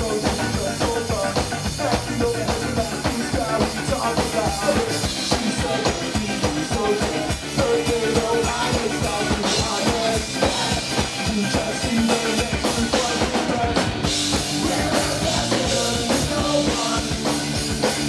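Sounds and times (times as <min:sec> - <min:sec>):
live ska-punk band playing: 0:00.0 - 0:18.0.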